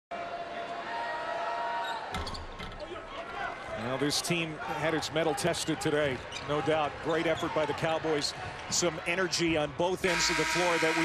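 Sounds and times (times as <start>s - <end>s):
arena crowd noise: 0.1s - 11.0s.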